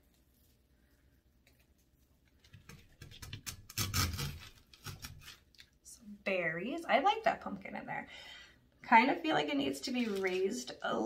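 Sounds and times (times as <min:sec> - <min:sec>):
plastic flowers rustling and clicking: 0:09.9 - 0:10.7.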